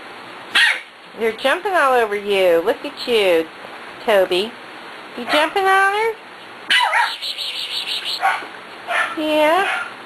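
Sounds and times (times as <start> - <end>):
dog yipping: 0.5 - 0.9, 6.7 - 10.0.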